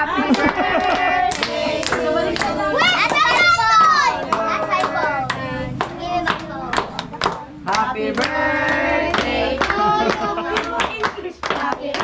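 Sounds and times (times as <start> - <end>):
sharp claps: 0.3 - 12.0
children talking and shouting: 2.5 - 7.6.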